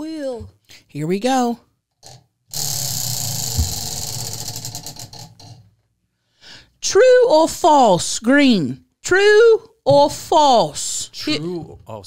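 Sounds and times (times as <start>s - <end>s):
low thump: 3.5s - 4.0s.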